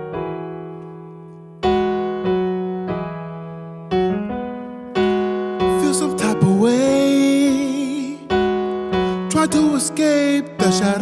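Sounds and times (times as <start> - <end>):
electric piano chords: 0.0 - 11.0.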